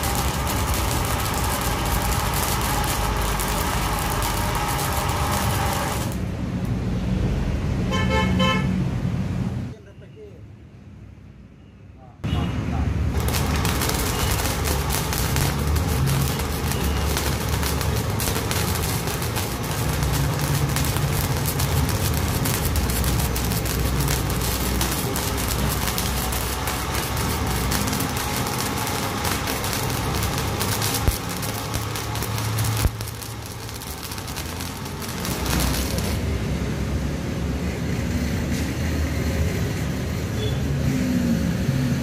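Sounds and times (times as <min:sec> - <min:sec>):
welding arc crackling: 0:00.0 - 0:06.9, 0:13.0 - 0:40.3
sharp pops: 0:13.2 - 0:36.2.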